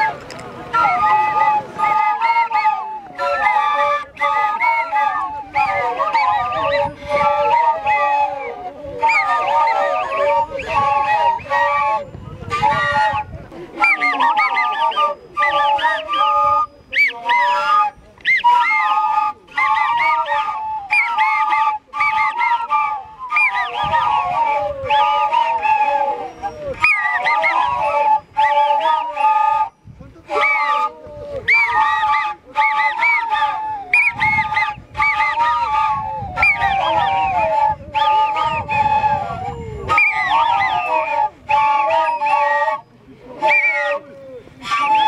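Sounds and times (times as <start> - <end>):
cane flutes playing melody: 0.0 - 45.0.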